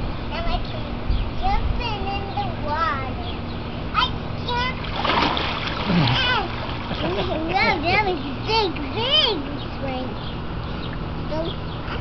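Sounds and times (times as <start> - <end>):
high-pitched child's voice: 0.3 - 4.8, 6.0 - 6.5, 7.4 - 10.2, 11.3 - 11.6
pool water splashing: 4.4 - 9.0.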